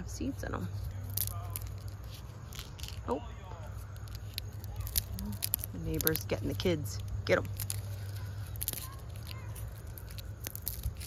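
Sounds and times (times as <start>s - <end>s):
dry leaves crackling and rustling: 0.0s - 11.0s
steady low hum: 0.0s - 11.0s.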